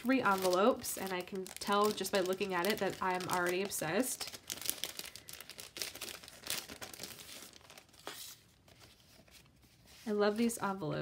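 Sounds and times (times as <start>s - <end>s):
paper rustling: 0.0s - 10.6s
plastic sleeve crinkling: 0.0s - 10.6s.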